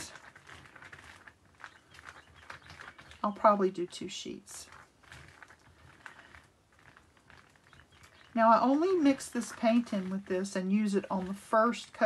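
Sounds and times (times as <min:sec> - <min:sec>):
palette knife scraping paint: 0:04.6 - 0:12.0.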